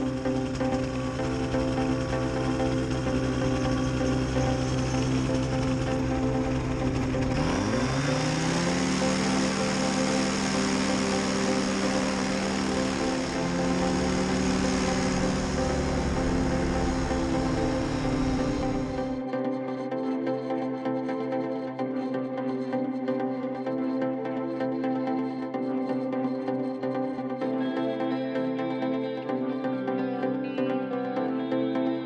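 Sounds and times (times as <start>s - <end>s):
paramotor engine and propeller: 0.0s - 19.4s
music: 0.0s - 32.0s.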